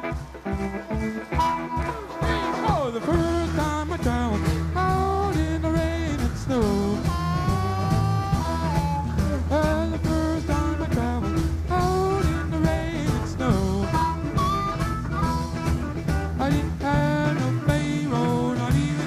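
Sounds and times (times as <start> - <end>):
blues rock band playing: 0.0 - 19.0
electric guitar: 0.0 - 19.0
sung vocals: 2.1 - 14.5, 16.4 - 19.0
droning bass line: 2.8 - 19.0.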